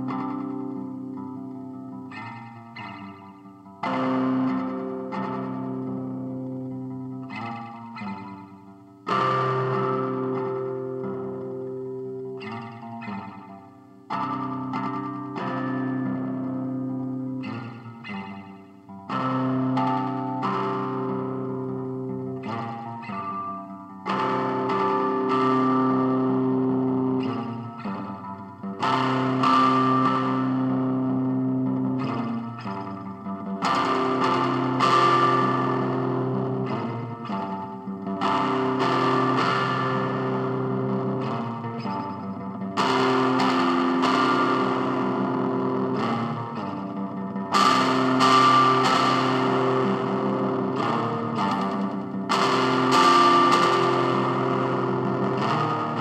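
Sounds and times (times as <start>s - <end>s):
distorted electric guitar chords: 0.0s - 56.0s.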